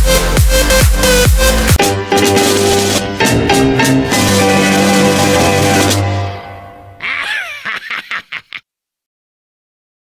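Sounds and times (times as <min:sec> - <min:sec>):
music: 0:00.0 - 0:07.3.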